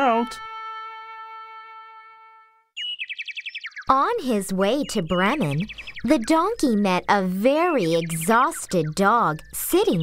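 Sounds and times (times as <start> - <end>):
narrator speaking: 0.0 - 0.4, 3.9 - 10.0
held musical note: 0.0 - 2.7.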